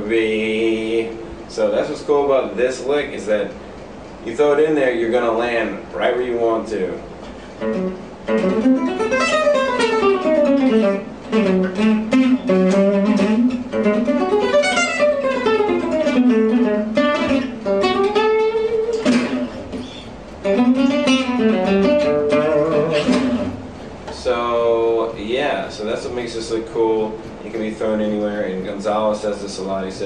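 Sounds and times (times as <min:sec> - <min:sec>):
acoustic guitar arpeggios: 0:07.4 - 0:30.0.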